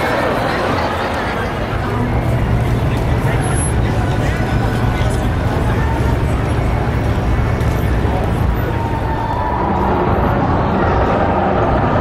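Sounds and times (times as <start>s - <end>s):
people talking: 0.0s - 12.0s
traffic hum: 0.0s - 12.0s.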